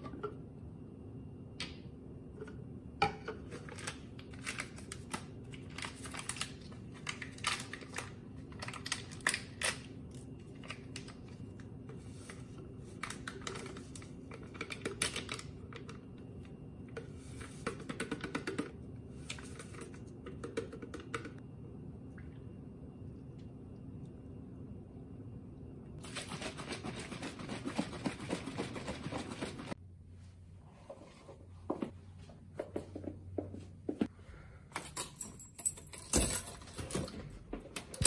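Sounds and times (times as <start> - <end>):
plastic packets crinkling and tearing: 3.8 - 9.9.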